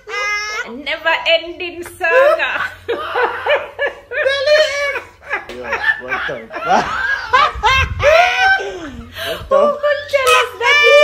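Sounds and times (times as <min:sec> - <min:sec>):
people laughing: 0:02.1 - 0:10.2.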